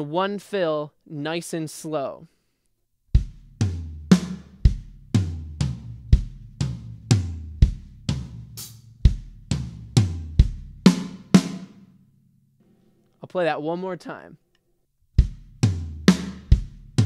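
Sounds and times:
drum kit fill: 0:03.1 - 0:12.0, 0:15.2 - 0:17.0.

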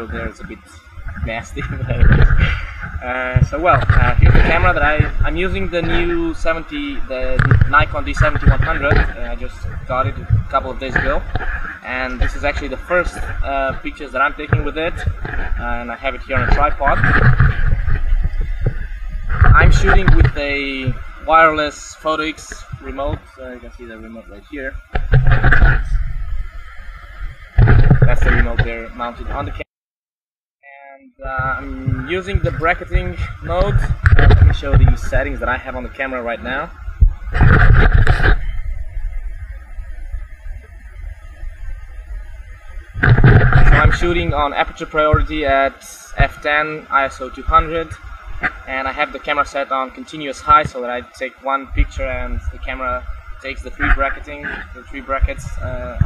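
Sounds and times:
wind rumbling on microphone: 0:00.0 - 0:29.7, 0:31.2 - 0:56.0
camera handling rumble: 0:01.0 - 0:21.2, 0:31.4 - 0:35.4, 0:42.9 - 0:45.4.

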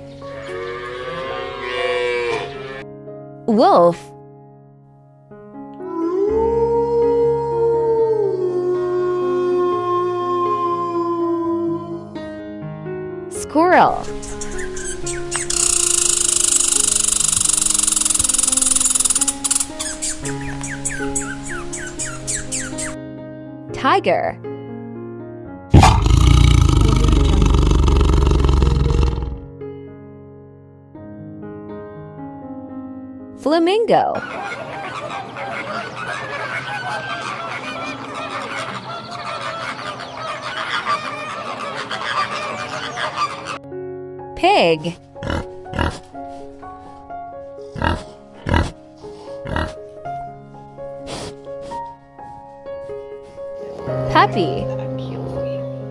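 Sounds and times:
background music of held notes: 0:00.0 - 0:06.0, 0:11.9 - 0:16.1, 0:18.6 - 0:25.7, 0:41.6 - 0:55.9
squirrel chattering: 0:14.3 - 0:20.2
flamingos honking and calling: 0:34.2 - 0:43.6.

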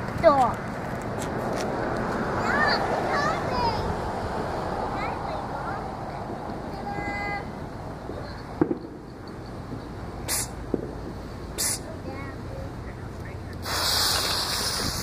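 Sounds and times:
firework fuse hissing: 0:10.3 - 0:11.9, 0:13.6 - 0:15.0.

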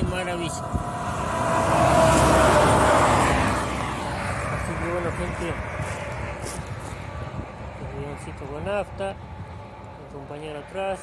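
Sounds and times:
wind on microphone: 0:00.0 - 0:10.0
rumbling vehicle noise: 0:00.0 - 0:11.0.

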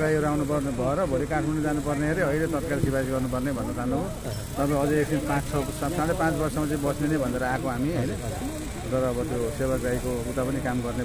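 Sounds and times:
low engine hum: 0:00.0 - 0:11.0
man talking: 0:00.0 - 0:11.0.

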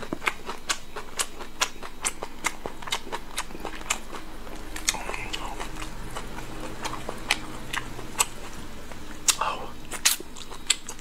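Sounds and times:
wet chewing and lip-smacking: 0:00.0 - 0:11.0.

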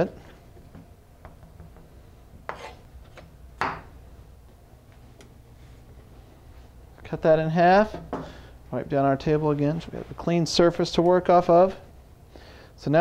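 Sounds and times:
low steady hum: 0:00.0 - 0:13.0
knife cutting pepper on cutting board: 0:02.5 - 0:02.8.

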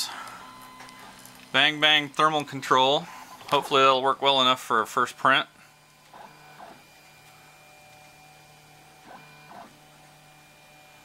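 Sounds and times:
steady low hum: 0:00.0 - 0:11.0
stepper motors whining: 0:05.5 - 0:11.0.

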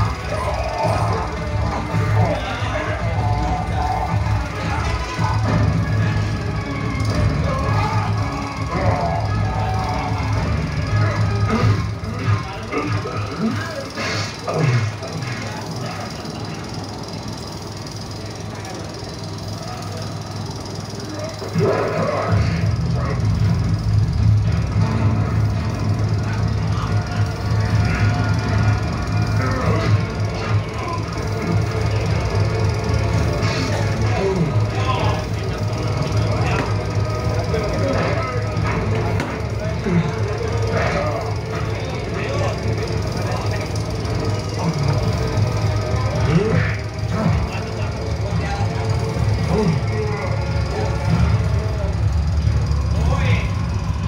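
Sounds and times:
film soundtrack over loudspeakers: 0:00.0 - 0:54.0
steady low drone: 0:00.0 - 0:54.0.

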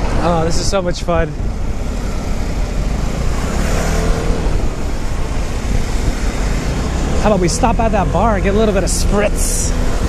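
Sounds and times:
wind rushing over microphone: 0:00.0 - 0:10.0.

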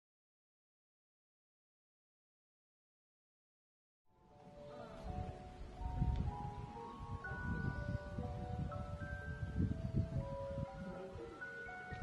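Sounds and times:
soft chime-like music: 0:04.2 - 0:12.0.

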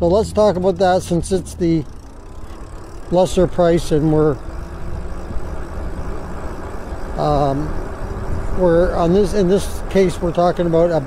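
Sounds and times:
bike tyres rolling on asphalt: 0:00.0 - 0:11.0
wind rumble on microphone: 0:04.2 - 0:11.0.

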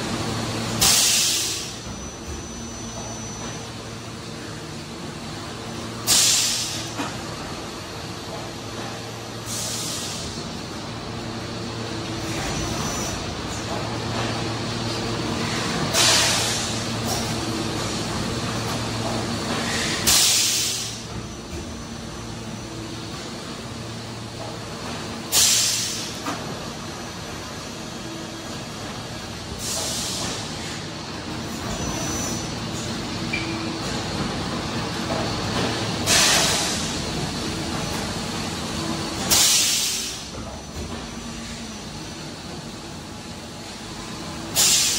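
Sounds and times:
compressed air hiss: 0:00.8 - 0:01.8, 0:06.0 - 0:06.9, 0:09.4 - 0:10.4, 0:15.9 - 0:16.8, 0:19.6 - 0:21.0, 0:25.3 - 0:26.1, 0:29.6 - 0:30.8, 0:39.3 - 0:40.3, 0:44.6 - 0:44.9.

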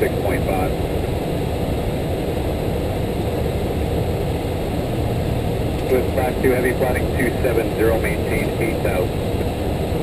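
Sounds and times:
aircraft cockpit rushing noise: 0:00.0 - 0:10.0.

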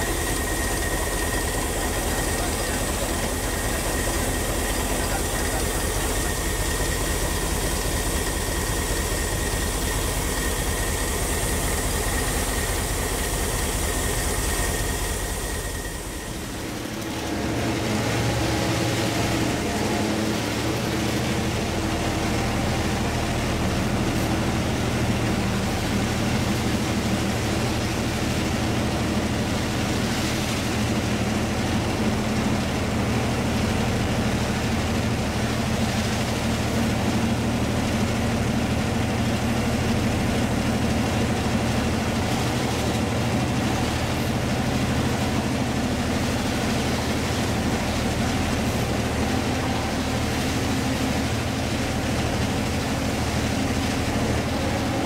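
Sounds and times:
diesel locomotive engine running: 0:00.0 - 0:55.0
rail noise: 0:00.0 - 0:55.0.

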